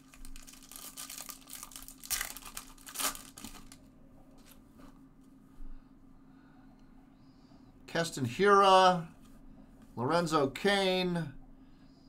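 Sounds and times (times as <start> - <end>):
plastic wrapper tearing: 0.0 - 3.8
wrapper rustling: 0.0 - 3.8.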